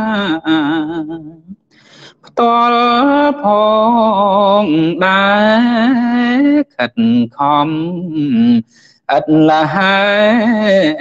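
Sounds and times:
man chanting sung verse: 2.2s - 11.0s.

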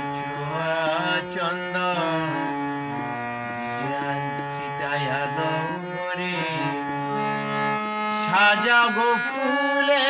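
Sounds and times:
harmonium held notes: 0.0s - 10.0s
man singing wordless note: 3.8s - 6.9s, 8.1s - 10.0s.

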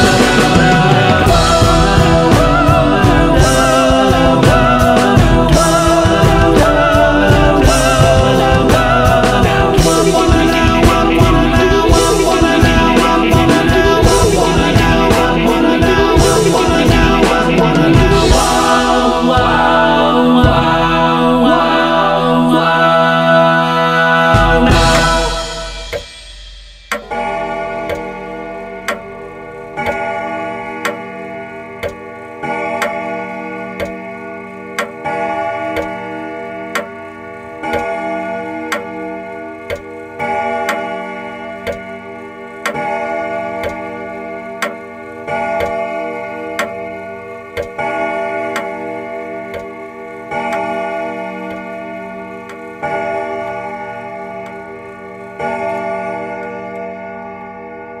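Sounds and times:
clock ticking: 0.0s - 21.4s, 24.4s - 26.2s, 26.8s - 57.4s
slow sustained chords: 0.0s - 58.0s.

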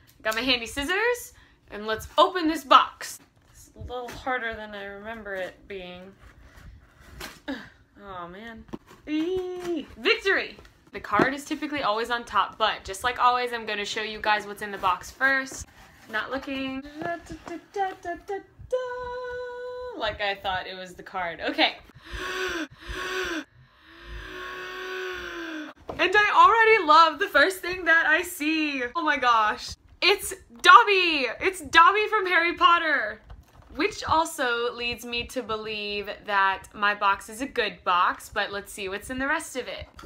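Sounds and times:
strained vocal effort: 22.0s - 25.8s.

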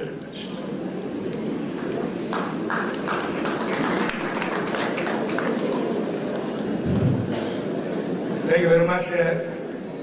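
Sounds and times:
audience applauding: 1.7s - 6.4s.

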